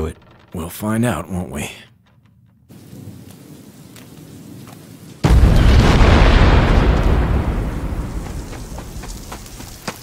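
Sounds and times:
steady rain falling: 0.0s - 10.0s
low rumble of thunder: 2.7s - 9.6s.

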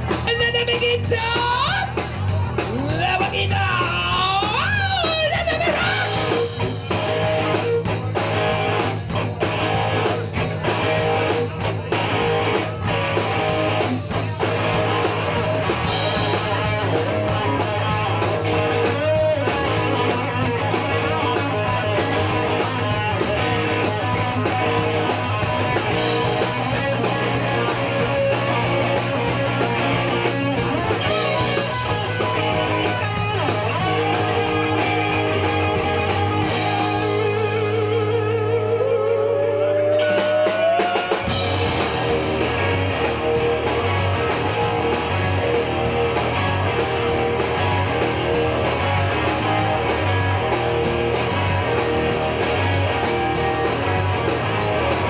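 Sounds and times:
bass guitar: 0.0s - 55.0s
drums: 0.0s - 55.0s
electric guitars: 0.0s - 55.0s.

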